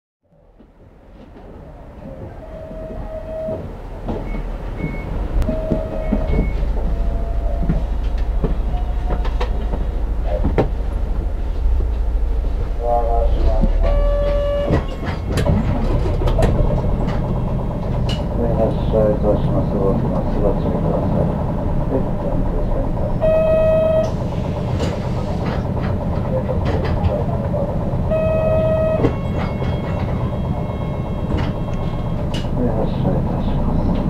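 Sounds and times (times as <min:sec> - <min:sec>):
bus diesel engine idling: 0:00.4 - 0:34.0
brief electronic tones: 0:04.3 - 0:10.4, 0:13.8 - 0:15.4, 0:23.2 - 0:24.2, 0:28.1 - 0:32.1.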